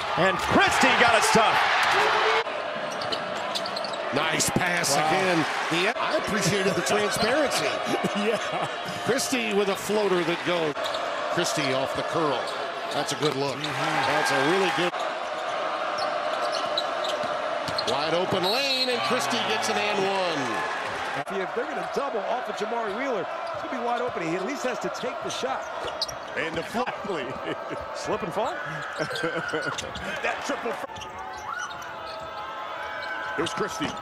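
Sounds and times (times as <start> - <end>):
arena crowd noise: 0.0 - 34.0
shoe squeaks: 2.9 - 4.2, 15.4 - 19.1, 22.8 - 26.6, 28.4 - 30.1, 30.9 - 34.0.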